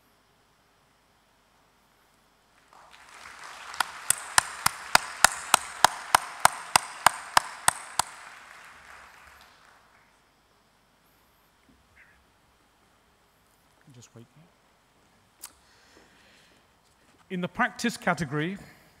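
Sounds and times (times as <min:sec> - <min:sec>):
audience applause: 0:02.6 - 0:10.1
loud regular claps close by: 0:02.6 - 0:10.1.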